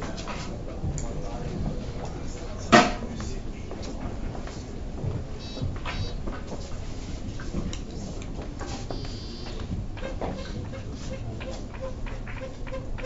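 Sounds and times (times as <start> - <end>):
billiard room background noise: 0.0 - 13.0
short high squeaks: 5.4 - 6.2, 8.8 - 13.0.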